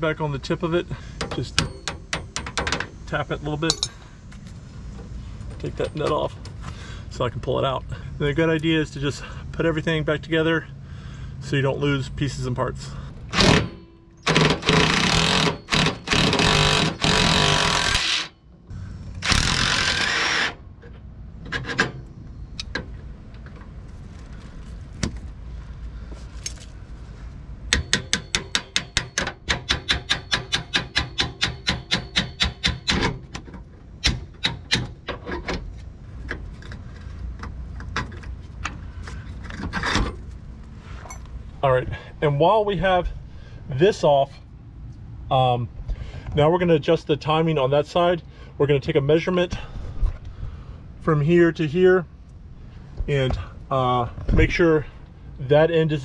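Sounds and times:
cordless impact driver running: 14.3s - 18.3s, 19.2s - 20.6s.

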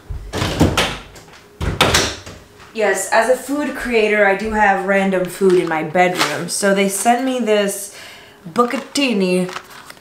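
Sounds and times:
door shutting with thud: 0.1s - 2.4s
closet door opening with clatter: 0.2s - 2.4s.

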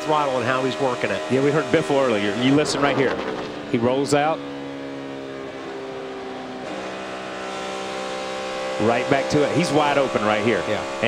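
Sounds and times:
race car engine revving: 0.0s - 11.0s.

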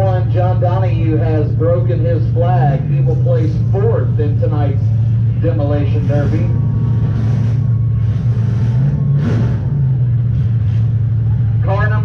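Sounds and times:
car engine fast idle and revving: 0.0s - 12.0s.

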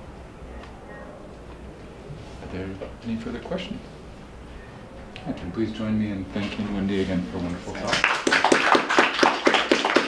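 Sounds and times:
small audience applauding: 7.8s - 10.0s.

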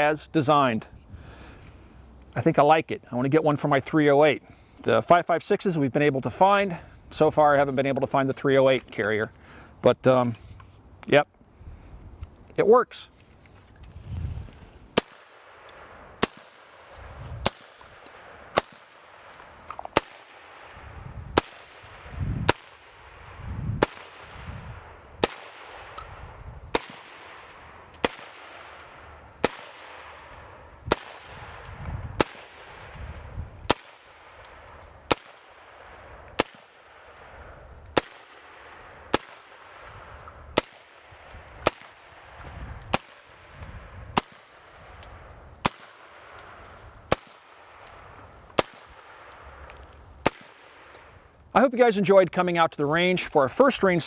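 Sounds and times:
suppressed rifle shots: 14.9s - 49.6s, 50.2s - 51.0s.

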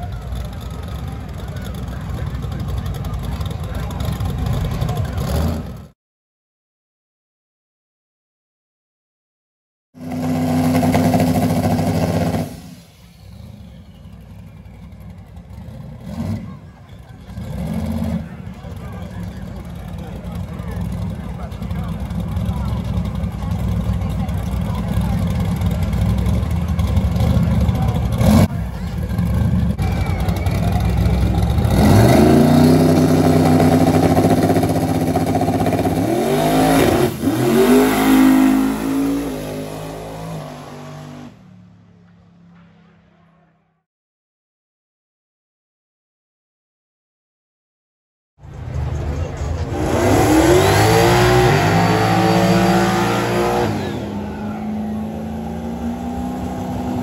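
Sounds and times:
crowd voices: 0.0s - 5.9s, 12.8s - 40.8s, 48.4s - 57.0s
race car engine revving: 0.0s - 5.9s, 10.0s - 41.5s, 48.5s - 57.0s.

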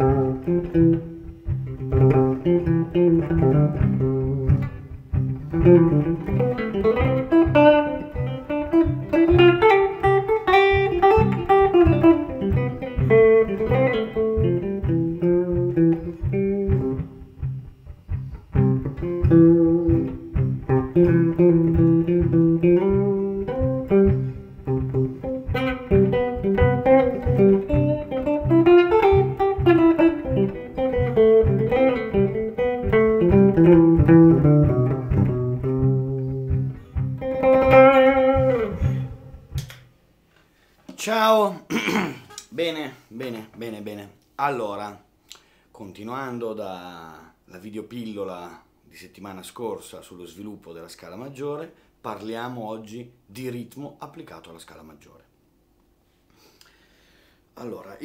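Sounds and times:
looped accompaniment: 0.0s - 39.9s
jazz electric guitar solo: 0.0s - 40.0s
man talking: 40.9s - 41.8s, 42.4s - 45.1s, 45.8s - 55.3s, 57.6s - 58.0s.

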